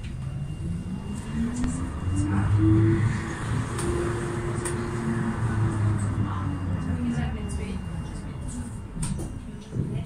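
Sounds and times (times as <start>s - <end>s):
tram motors whining: 0.0s - 10.0s
tram rumbling on rails: 0.0s - 10.0s.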